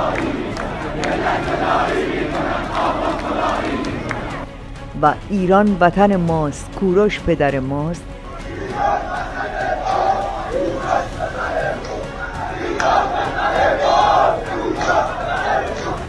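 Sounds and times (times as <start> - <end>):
crowd of protesters shouting: 0.0 - 4.4, 8.3 - 16.0.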